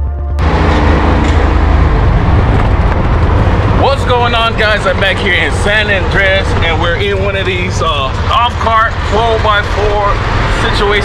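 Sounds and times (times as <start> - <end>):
music: 0.0 - 1.2
golf cart low rumble: 0.0 - 11.0
wind and road noise: 0.4 - 11.0.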